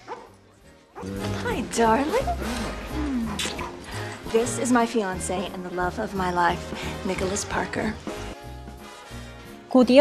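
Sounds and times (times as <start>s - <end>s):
dog barking: 0.0s - 0.4s
background music: 0.0s - 10.0s.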